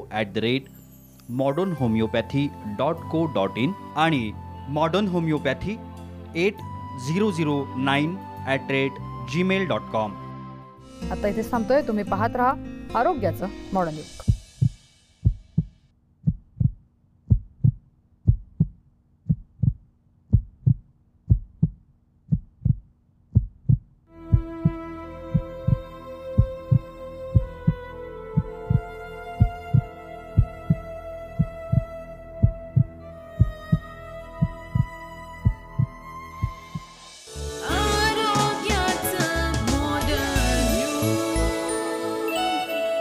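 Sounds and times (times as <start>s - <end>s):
soft music of sustained chords: 0.0s - 14.3s, 24.1s - 43.0s
heartbeat thumps: 14.2s - 36.9s.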